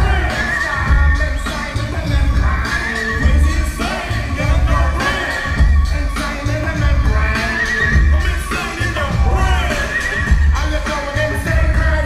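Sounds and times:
live hip-hop music: 0.0 - 12.0.

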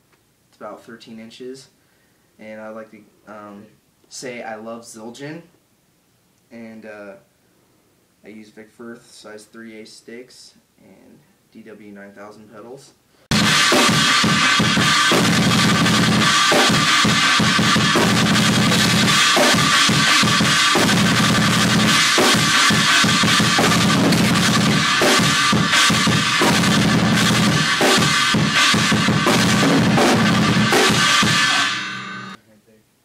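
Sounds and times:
fast double bass drum: 13.3 - 31.8
cymbals: 13.3 - 32.4.

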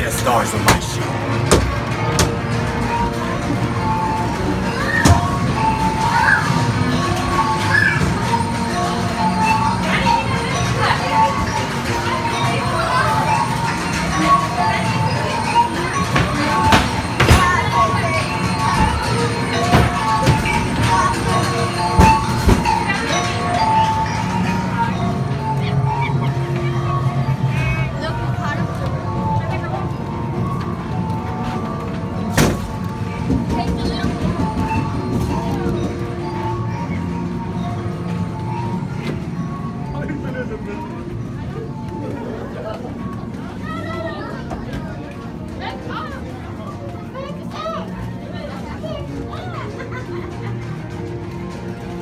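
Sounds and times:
droning music: 0.0 - 52.0
high-pitched voices shrieking: 4.6 - 8.6.

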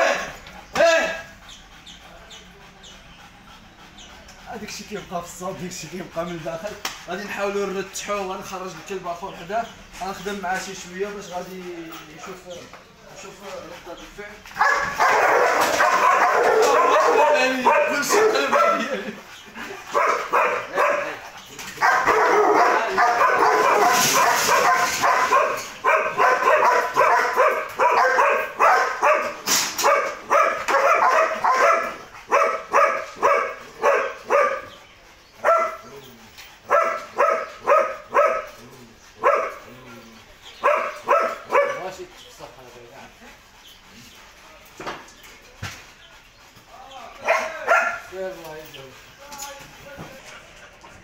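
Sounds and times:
dog barking: 14.6 - 19.0, 19.9 - 21.2, 21.8 - 34.8, 35.4 - 35.9, 36.7 - 38.6, 39.2 - 39.7, 40.6 - 42.0, 47.2 - 48.1.

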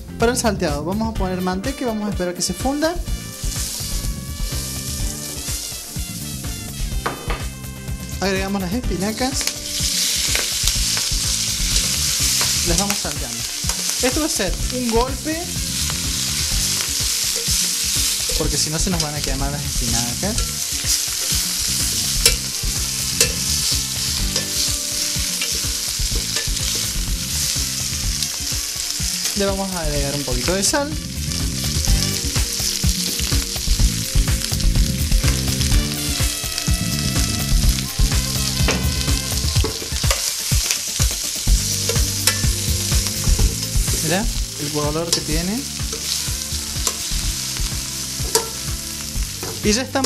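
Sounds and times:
background music with a beat: 0.0 - 50.0
butter sizzling in a frying pan: 3.0 - 8.2, 9.1 - 50.0
utensil clicking against pan: 13.6 - 14.6, 20.4 - 22.5, 39.6 - 41.2, 46.8 - 47.2, 48.2 - 48.6.

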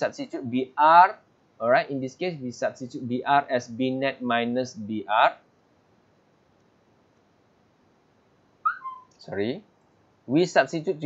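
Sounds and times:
loud high-pitched squeak: 8.7 - 9.2.

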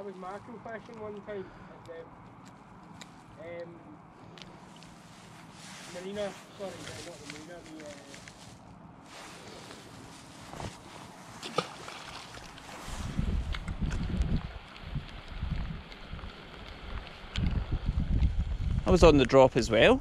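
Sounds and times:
outdoor hiss: 4.8 - 8.4
wind buffeting microphone: 12.6 - 20.0.

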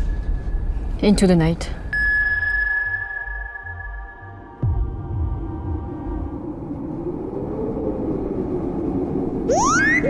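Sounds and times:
low pulsing bass: 3.8 - 7.3.

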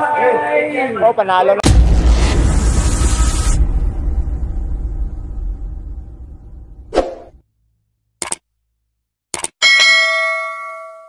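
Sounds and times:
short hit sound effect: 1.6 - 7.4
mouse click sounds: 8.2 - 8.4, 9.4 - 9.6
notification bell chime: 9.6 - 11.0.

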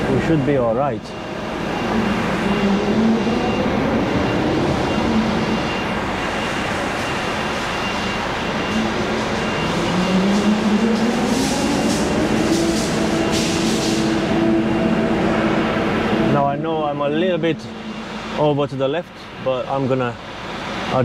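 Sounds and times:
lorry diesel engine running: 0.0 - 21.0.

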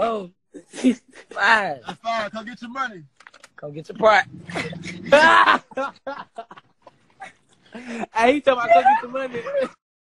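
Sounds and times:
man laughing: 4.5 - 9.7.

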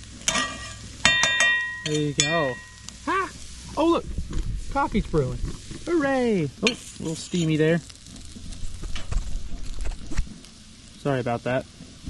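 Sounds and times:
eggs sizzling: 0.0 - 12.0
metal spatula scraping skillet: 0.2 - 3.0, 6.6 - 10.2.

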